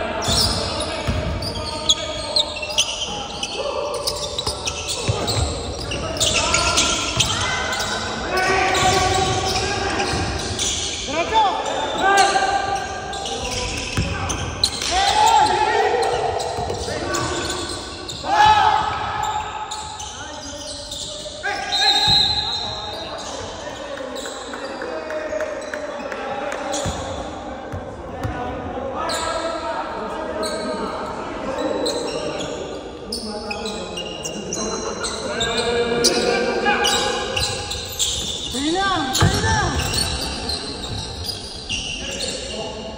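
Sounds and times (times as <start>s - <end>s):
players calling out: 33.2s - 42.6s.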